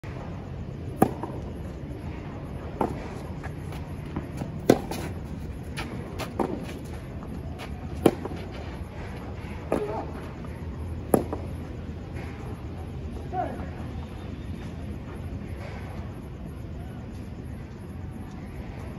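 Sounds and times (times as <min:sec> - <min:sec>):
low background noise: 0:00.0 - 0:18.9
tennis racket hitting ball: 0:04.2 - 0:06.9, 0:07.9 - 0:08.5.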